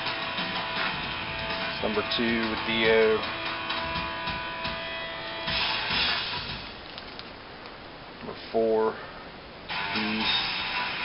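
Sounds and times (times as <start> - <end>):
background music with guitar chord: 0.0 - 6.7, 9.7 - 11.0
plastic sleeves rustling and crinkling: 6.6 - 7.8.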